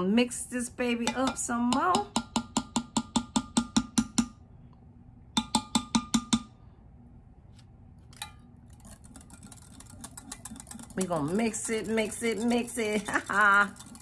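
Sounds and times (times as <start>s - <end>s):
spatula knocking against glass cup: 1.1s - 4.3s, 5.4s - 6.5s.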